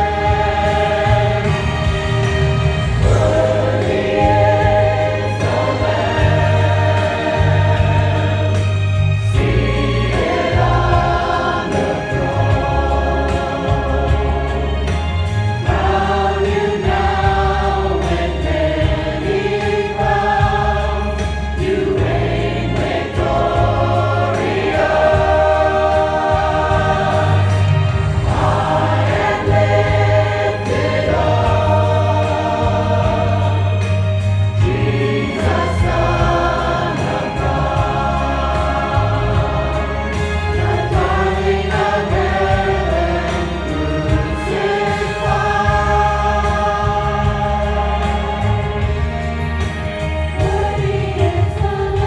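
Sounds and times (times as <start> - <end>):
choir singing gospel: 0.0 - 52.0
deep held bass line: 0.0 - 52.0.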